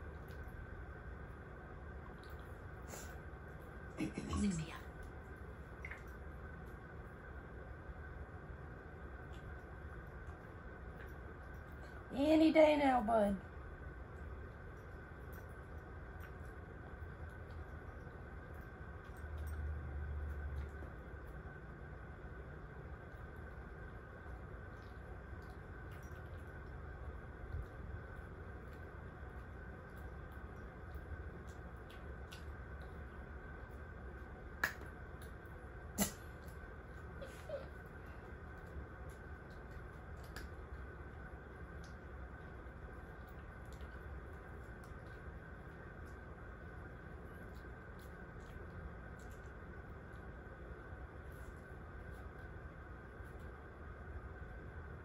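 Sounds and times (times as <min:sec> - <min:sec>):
low steady hum: 0:00.0 - 0:55.0.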